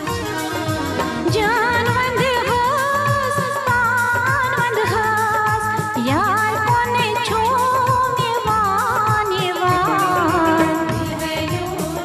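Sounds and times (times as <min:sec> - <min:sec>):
steady drum beat: 0:00.0 - 0:12.0
high voice singing: 0:09.7 - 0:12.0.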